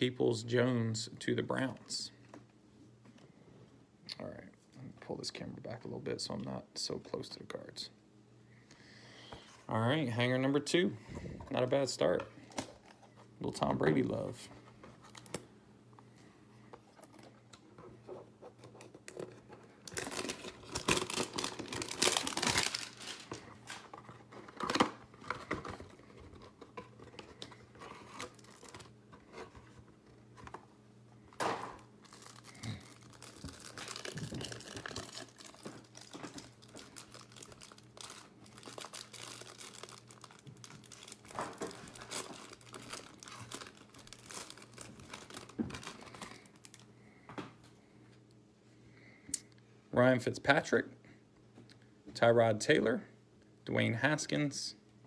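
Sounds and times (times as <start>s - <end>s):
plastic wrapping tearing and crinkling: 19.0s - 29.0s, 32.0s - 46.9s.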